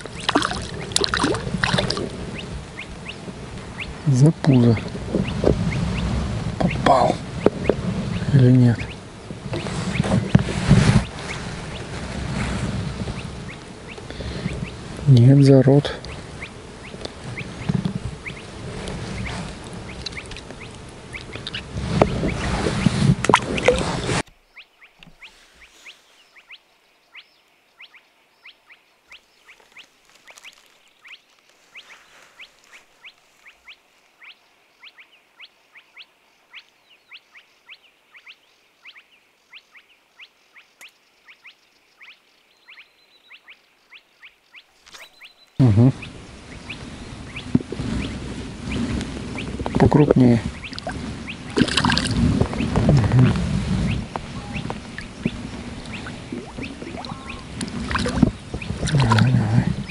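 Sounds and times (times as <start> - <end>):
rustling handling noise: 29.6 - 33.5.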